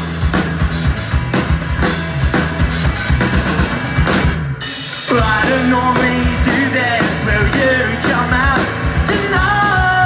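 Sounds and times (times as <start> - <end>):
bass guitar: 0.0 - 10.0
drum kit: 0.0 - 10.0
electric guitars: 0.0 - 10.0
lead vocal singing: 5.1 - 10.0.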